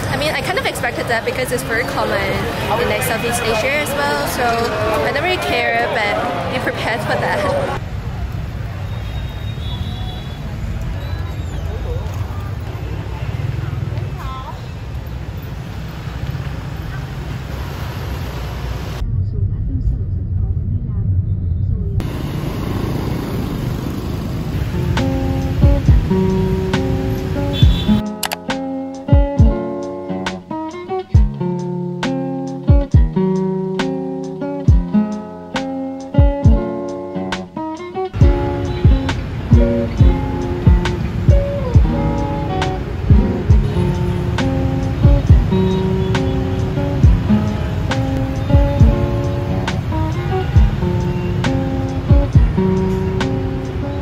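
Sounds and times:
voices of passers-by: 0:00.0 - 0:28.2, 0:29.1 - 0:54.0
motorbike traffic rumble: 0:00.0 - 0:28.4, 0:38.1 - 0:54.0
plucked acoustic guitar tune: 0:24.5 - 0:54.0.

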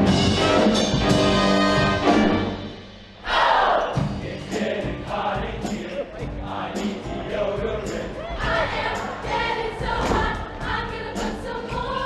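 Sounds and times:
instrumental accompaniment with beat: 0:00.0 - 0:12.0
choir singing: 0:00.6 - 0:12.0.

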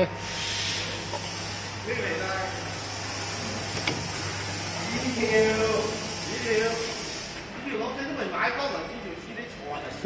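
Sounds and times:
printing machine humming: 0:00.0 - 0:07.8.

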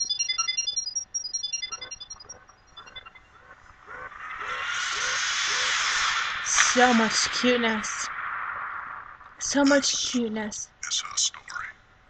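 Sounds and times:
rapid high electronic bleeps: 0:00.0 - 0:06.0
spaceship taking off hiss: 0:03.9 - 0:09.4.

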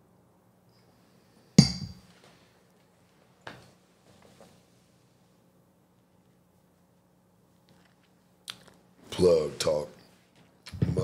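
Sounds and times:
glass set down on desk: 0:01.6 - 0:02.0.

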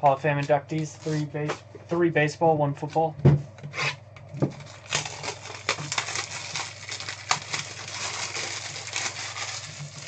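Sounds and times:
box knocking on table: 0:03.2 - 0:03.4.

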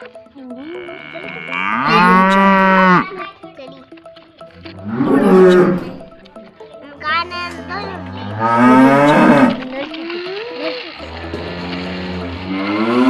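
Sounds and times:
cow mooing: 0:00.6 - 0:03.2, 0:04.8 - 0:06.1, 0:07.5 - 0:09.7, 0:11.0 - 0:13.0.

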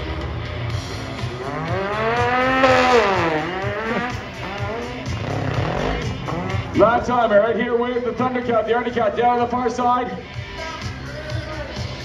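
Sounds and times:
utility vehicle engine revving: 0:00.0 - 0:07.3.

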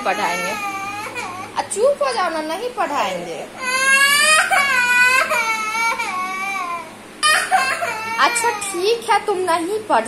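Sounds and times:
toddler crying: 0:00.0 - 0:01.7, 0:03.6 - 0:09.1.

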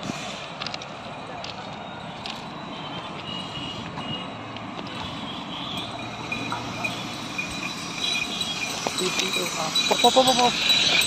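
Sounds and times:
passenger train rumbling: 0:00.0 - 0:11.0
crickets chirping: 0:04.4 - 0:11.0.

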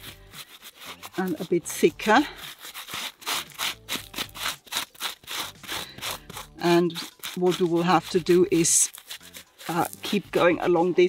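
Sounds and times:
gloved hand scraping soil: 0:00.0 - 0:11.0.

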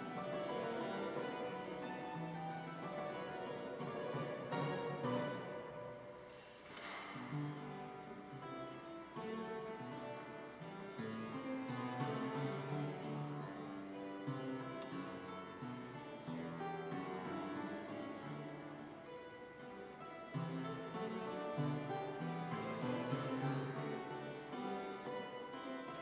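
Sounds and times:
clavichord playing classical music: 0:00.0 - 0:26.0.

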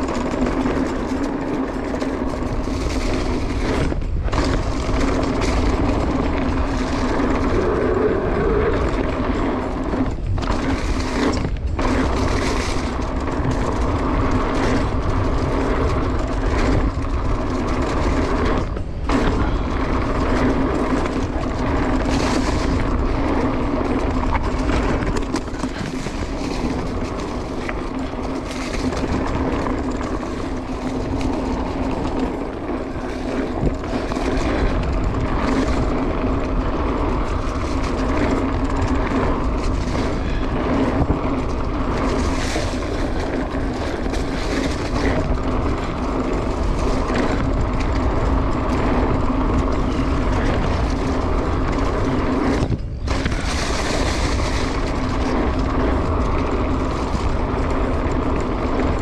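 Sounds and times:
bike knocks and rattles: 0:00.0 - 0:59.0
bike tyres rumbling on dirt: 0:00.0 - 0:59.0.

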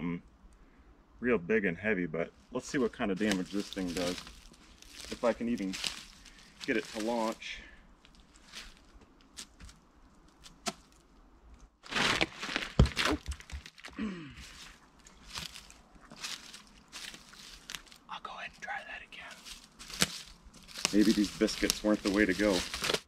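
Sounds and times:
wood being handled: 0:02.4 - 0:07.4, 0:11.9 - 0:18.1, 0:19.4 - 0:23.0
wood thumping on ground: 0:11.9 - 0:14.0.

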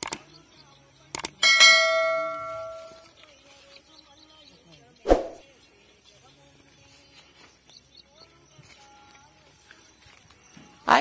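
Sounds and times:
bell-like metallic strike: 0:01.4 - 0:03.0.

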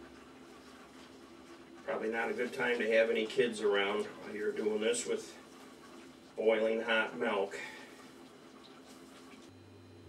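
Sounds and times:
faint stirring in a pot: 0:00.0 - 0:10.0
person speaking: 0:01.9 - 0:05.5, 0:06.4 - 0:07.9.

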